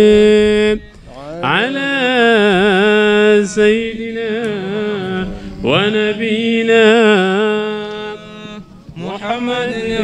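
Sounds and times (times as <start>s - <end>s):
man chanting through a microphone: 0.0s - 10.0s.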